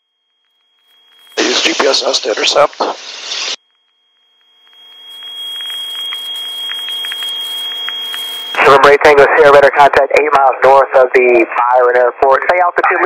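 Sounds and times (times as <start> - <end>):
radio hiss with high tone: 0.9 - 3.6, 4.6 - 13.0
faint radio crackles: 1.1 - 3.6, 4.7 - 13.0
radio transmission: 1.3 - 3.6, 5.8 - 13.0
controller's voice on radio: 1.4 - 3.0, 8.6 - 13.0.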